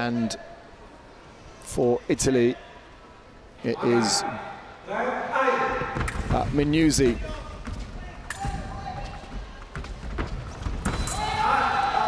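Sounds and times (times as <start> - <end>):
loud drawn-out shout: 11.1 - 12.0.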